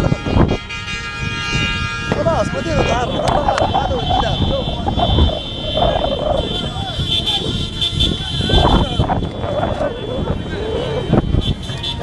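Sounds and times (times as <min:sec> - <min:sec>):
pickup trucks driving: 0:00.0 - 0:12.0
steady horn-like tone: 0:00.0 - 0:12.0
wind buffeting microphone: 0:00.0 - 0:12.0.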